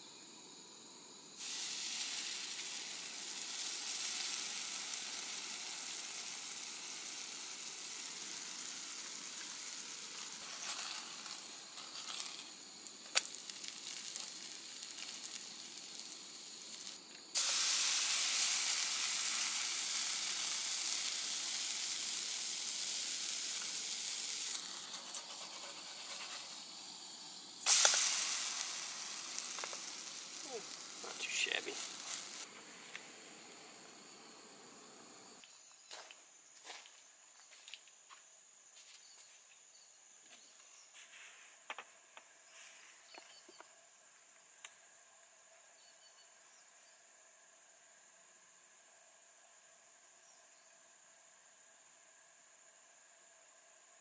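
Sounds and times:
batter sizzling in hot oil: 0:01.3 - 0:35.4.

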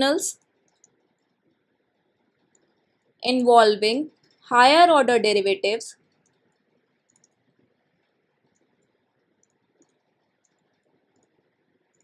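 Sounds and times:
stylus ticking on tablet screen: 0:00.3 - 0:03.2, 0:05.9 - 0:12.0.

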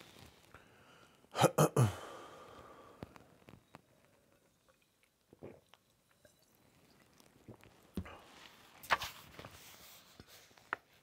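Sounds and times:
person drinking and swallowing: 0:04.1 - 0:08.3.

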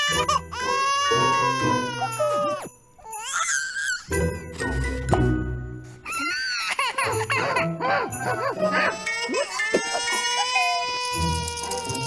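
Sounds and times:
cartoon baby crying: 0:00.0 - 0:04.1, 0:06.0 - 0:12.0.

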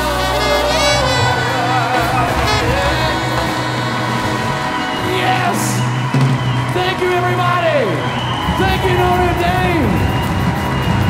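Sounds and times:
wavering voice or horn line: 0:00.0 - 0:05.8
big band and choir chord: 0:00.0 - 0:06.7.

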